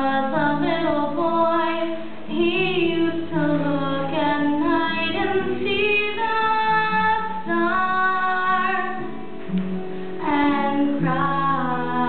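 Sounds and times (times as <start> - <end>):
light guitar accompaniment: 0.0 - 12.0.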